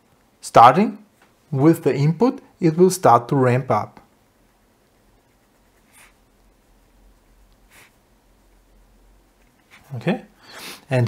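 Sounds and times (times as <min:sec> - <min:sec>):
soft hiss: 0:00.0 - 0:11.0
pen scratching on paper: 0:04.7 - 0:06.3.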